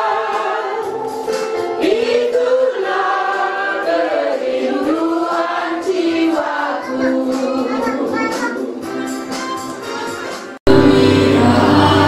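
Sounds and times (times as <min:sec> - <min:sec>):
group singing a hymn: 0:00.0 - 0:08.9, 0:10.7 - 0:12.0.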